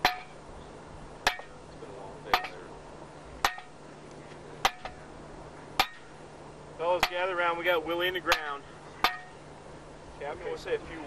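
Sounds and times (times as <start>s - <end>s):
ringing metallic strikes: 1.2s - 1.7s, 2.3s - 2.7s, 3.4s - 3.8s, 4.6s - 5.0s, 8.2s - 9.4s.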